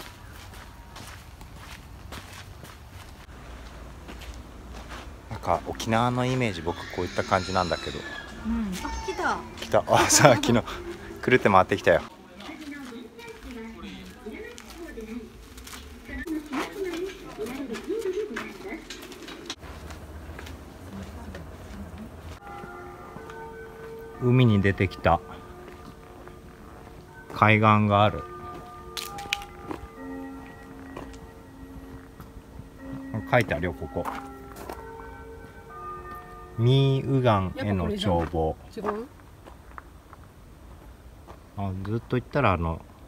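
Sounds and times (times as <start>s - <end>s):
footsteps on sandy dirt path: 0.0s - 6.6s, 8.2s - 24.3s, 24.9s - 33.2s, 33.8s - 36.2s, 37.6s - 41.5s.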